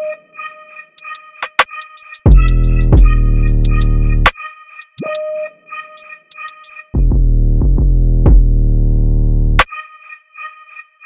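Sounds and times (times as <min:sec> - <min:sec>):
hi-hat ticks: 0:01.0 - 0:03.9, 0:04.8 - 0:05.2, 0:06.0 - 0:06.7
deep bass: 0:02.3 - 0:04.3, 0:07.0 - 0:09.6.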